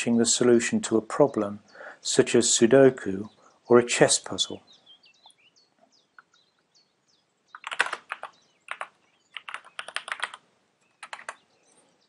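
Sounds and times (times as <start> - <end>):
typing on a keyboard: 7.5 - 10.4, 11.0 - 11.4.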